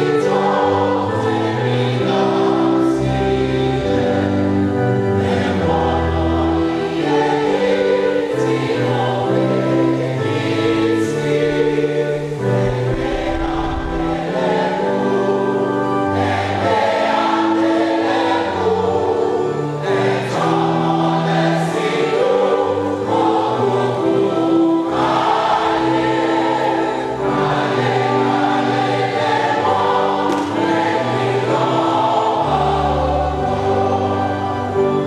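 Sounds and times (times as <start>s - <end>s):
choir singing a hymn: 0.0s - 35.0s
instrumental accompaniment: 0.0s - 35.0s.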